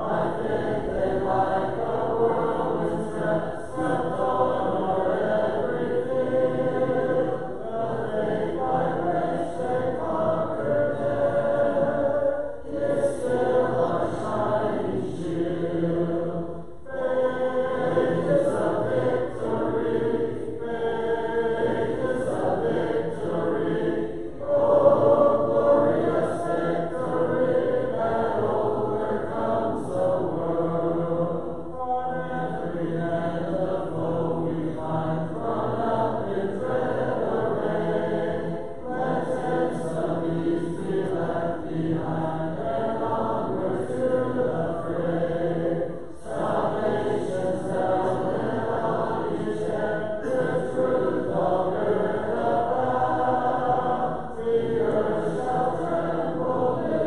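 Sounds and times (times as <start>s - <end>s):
congregation singing a hymn: 0.0s - 57.0s.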